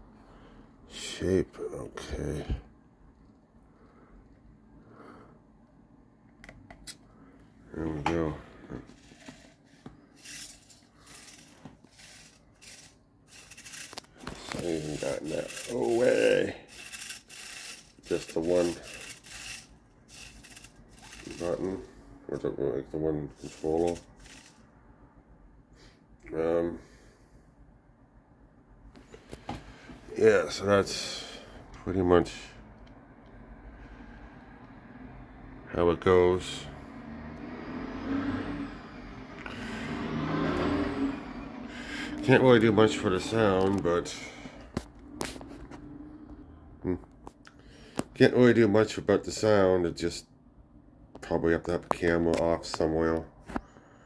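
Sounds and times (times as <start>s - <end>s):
servo motors whirring: 10.2s - 21.9s, 23.4s - 24.6s.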